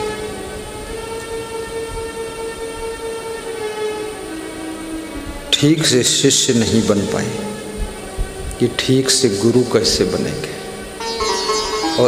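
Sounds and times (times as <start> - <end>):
sustained drone note: 0.0 - 12.0.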